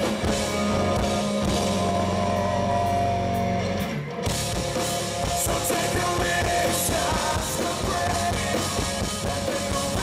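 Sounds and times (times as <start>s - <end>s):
live rock band music: 0.0s - 10.0s.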